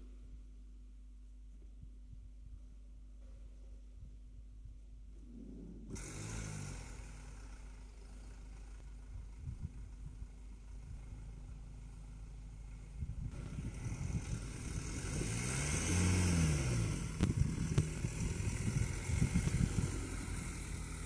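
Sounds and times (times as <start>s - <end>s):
van engine pulling away: 5.9s - 21.0s.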